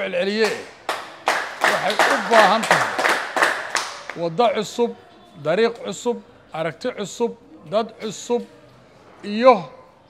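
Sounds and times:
people clapping: 0.0 - 4.3
man speaking: 1.7 - 3.0.

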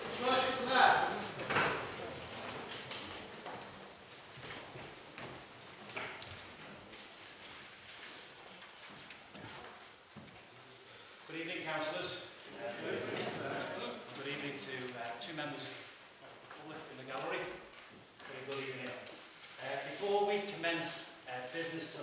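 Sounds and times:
footsteps: 0.0 - 10.8
shuffling: 0.0 - 22.0.

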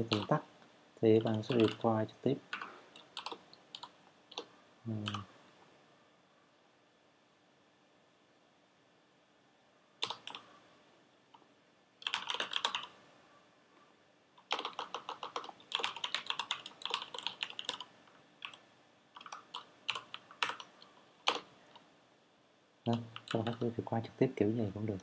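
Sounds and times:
typing on computer keyboard: 0.0 - 0.4, 1.2 - 1.8, 2.5 - 5.2, 10.0 - 10.5, 12.0 - 12.9, 14.4 - 18.6, 19.2 - 21.5, 22.9 - 23.6.

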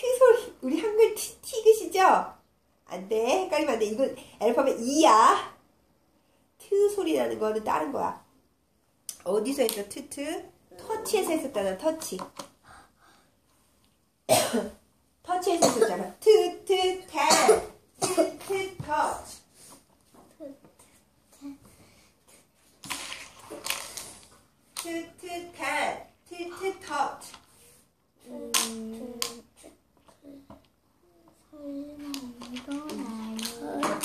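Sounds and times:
person coughing: 14.3 - 14.8, 15.6 - 16.0, 17.3 - 18.4.

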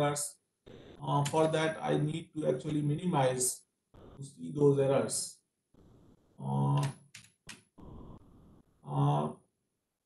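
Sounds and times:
computer mouse clicks: 6.7 - 7.7.

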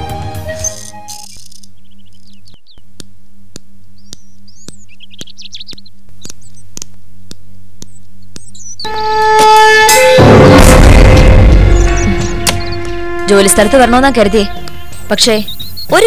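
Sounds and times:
small birds chirping: 0.6 - 9.2, 11.7 - 12.9, 13.8 - 16.0.

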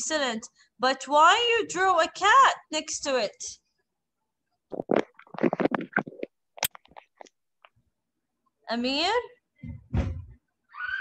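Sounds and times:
muffled crackly microphone rumbling: 4.7 - 7.2.

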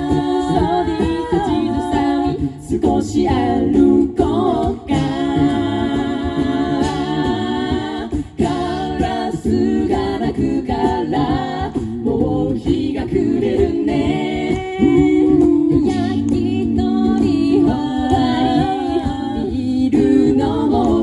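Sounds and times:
mixed voices singing in harmony: 0.0 - 21.0.

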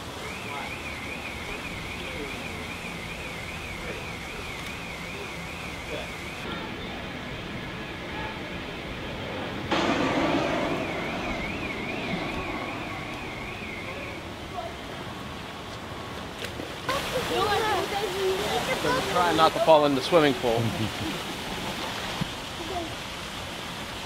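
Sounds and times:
wavering high tone: 9.7 - 14.6
rushing water of waterfall: 13.9 - 24.0.

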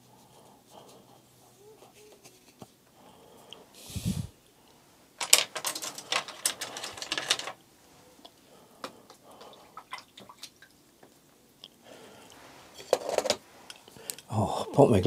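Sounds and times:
paintbrush rattling in water tub: 5.2 - 7.6, 12.8 - 13.4.

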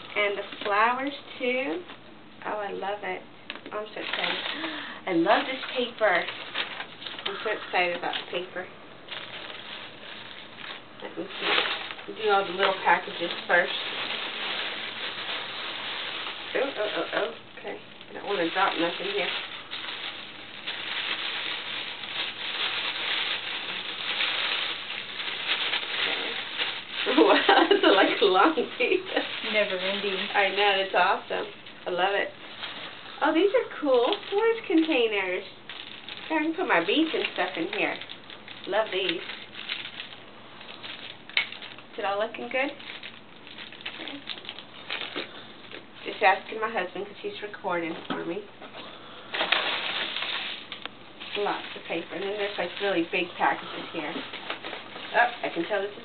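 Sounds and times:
paper rustling and crinkling: 3.5 - 46.4, 47.8 - 56.0.

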